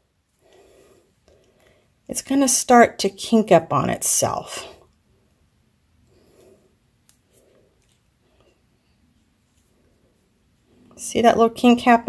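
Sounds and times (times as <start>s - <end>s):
faint handling sounds: 4.8s - 11.0s.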